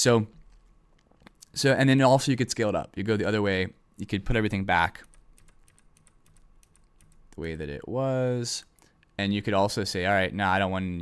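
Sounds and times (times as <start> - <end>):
keyboard typing clicks: 5.0 - 7.6.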